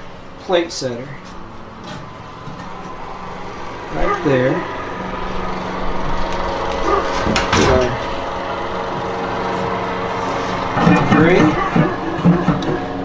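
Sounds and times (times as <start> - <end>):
steady hum: 0.0 - 13.0
metal clatter: 6.0 - 13.0.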